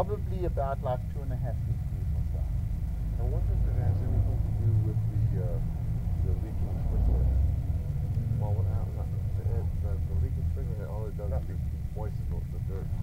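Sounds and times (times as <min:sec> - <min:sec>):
low motor rumble and hum: 0:00.0 - 0:13.0.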